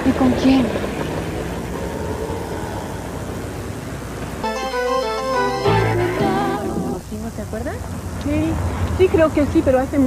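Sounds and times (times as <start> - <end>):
street ambience hiss: 0.0 - 10.0.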